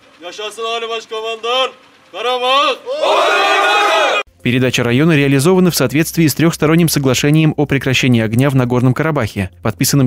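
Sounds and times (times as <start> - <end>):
man shouting a call: 0.3 - 4.2
squad shouting in unison: 2.5 - 4.3.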